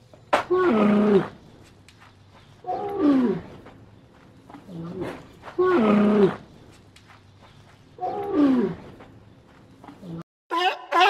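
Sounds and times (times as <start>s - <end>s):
camel moaning calls: 2.6s - 3.8s, 4.5s - 6.5s, 8.0s - 9.1s.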